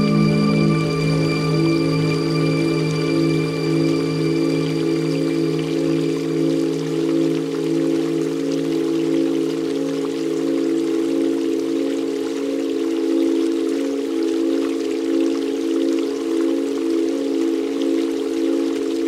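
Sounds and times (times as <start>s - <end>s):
sustained drone chord: 0.0s - 10.4s
trickling water and drops: 0.0s - 19.0s.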